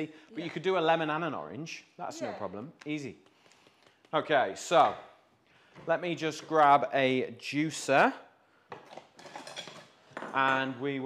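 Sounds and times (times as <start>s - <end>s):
metal utensils clattering: 8.9s - 10.0s.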